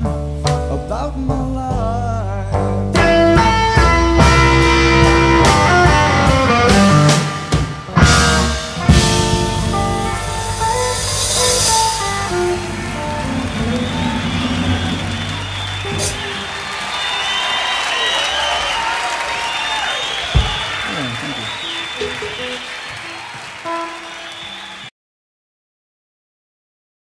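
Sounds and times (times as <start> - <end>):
blues-rock band playing: 0.0 - 24.7
electric guitar notes: 2.6 - 17.1, 20.3 - 24.8
audience voices: 5.5 - 24.9
audience applause: 11.6 - 24.9.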